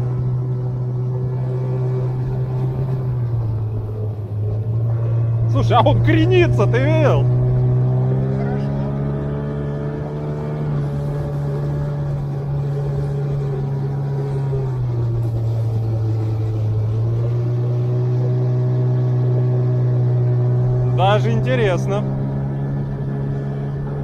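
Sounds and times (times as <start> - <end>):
boat motor running: 0.0 - 24.0.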